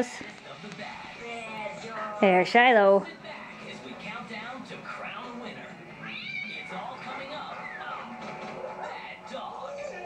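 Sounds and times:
television show music: 0.0s - 10.0s.

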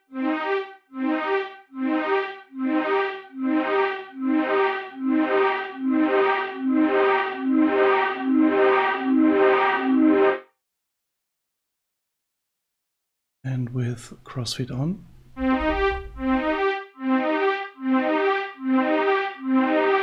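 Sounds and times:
synth notes repeating through delay: 0.0s - 10.4s, 15.4s - 20.0s.

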